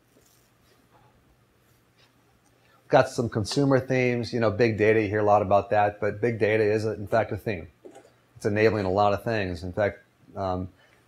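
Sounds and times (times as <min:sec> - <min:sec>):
faint low hum: 0:00.0 - 0:11.0
man speaking: 0:02.9 - 0:07.8, 0:08.4 - 0:10.7.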